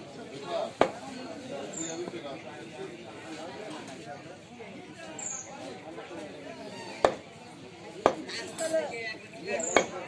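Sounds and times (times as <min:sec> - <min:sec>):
people talking in background: 0:00.0 - 0:10.0.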